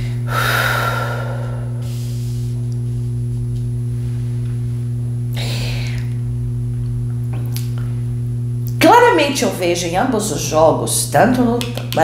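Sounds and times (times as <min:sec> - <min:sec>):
woman exhaling: 0:00.0 - 0:02.6, 0:05.3 - 0:06.2
low electrical hum: 0:00.0 - 0:12.0.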